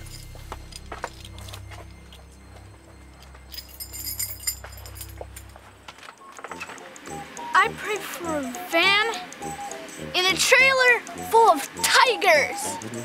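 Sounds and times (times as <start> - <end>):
keys jangling: 0.0 - 5.6.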